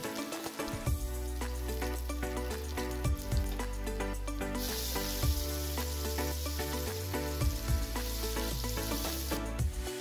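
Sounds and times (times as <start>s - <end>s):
frying sizzle in a pan: 0.0s - 3.8s, 4.4s - 10.0s
music with steady beat: 0.0s - 10.0s.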